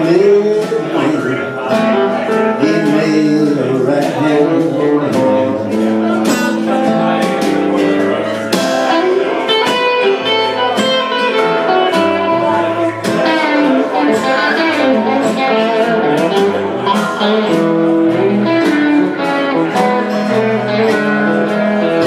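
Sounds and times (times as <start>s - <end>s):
drums and cymbals: 0.0s - 22.0s.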